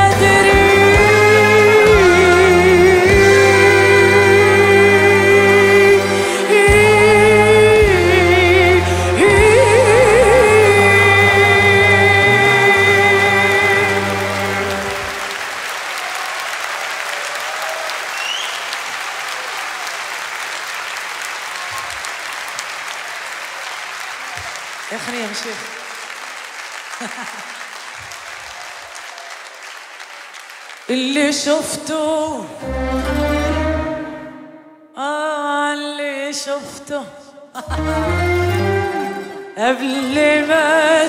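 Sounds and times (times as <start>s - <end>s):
woman singing with vibrato: 0.0s - 15.2s, 30.9s - 41.0s
audience applause: 8.8s - 31.5s
audience shouts: 14.2s - 26.0s, 28.0s - 30.5s.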